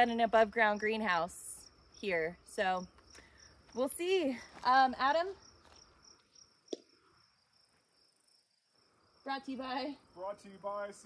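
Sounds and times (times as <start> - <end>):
insects trilling in grass: 0.0 - 11.0.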